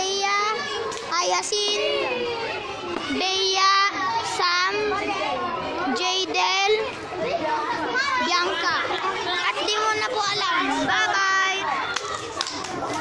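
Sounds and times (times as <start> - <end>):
young voices chattering: 0.0 - 13.0.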